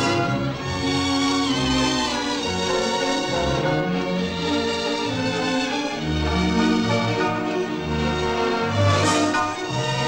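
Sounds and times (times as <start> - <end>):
orchestra playing a waltz: 0.0 - 10.0.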